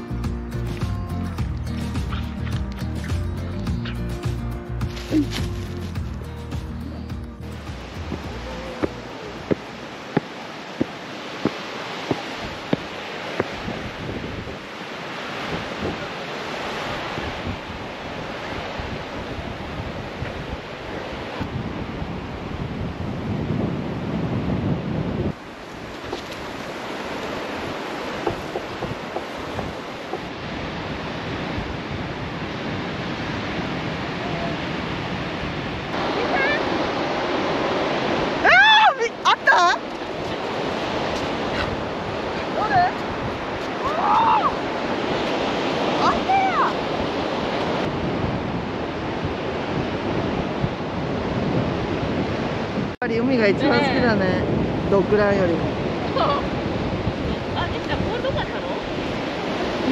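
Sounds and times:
ocean surf on beach: 0.0 - 2.2, 6.4 - 59.9
wind buffeting microphone: 4.7 - 59.9
person calling out: 8.3 - 9.4.

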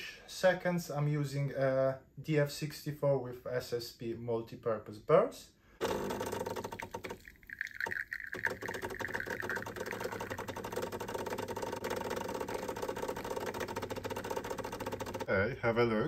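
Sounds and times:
espresso machine pump buzzing: 5.8 - 15.3.

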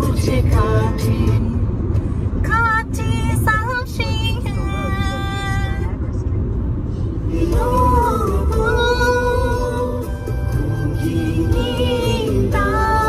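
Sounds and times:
car driving low rumble: 0.0 - 13.0.

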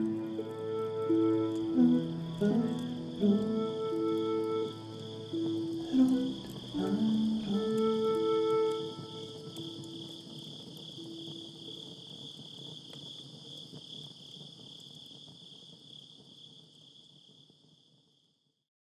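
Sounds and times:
low held music notes: 0.0 - 12.0
crickets chirring: 0.0 - 18.4.

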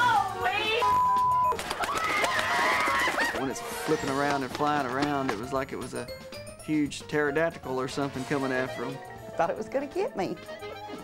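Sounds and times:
censor bleep: 0.8 - 1.6.

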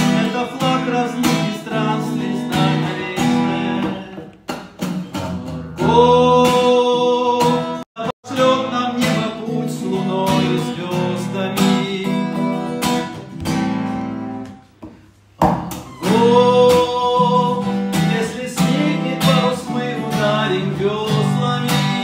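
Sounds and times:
man singing: 0.0 - 4.5, 5.8 - 13.2, 16.0 - 22.0
acoustic guitar strumming: 0.0 - 22.0.

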